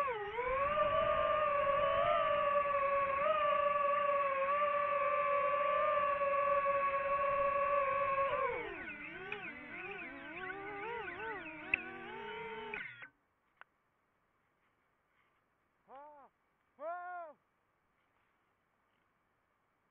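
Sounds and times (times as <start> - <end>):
drone motors whining: 0.0 - 13.1.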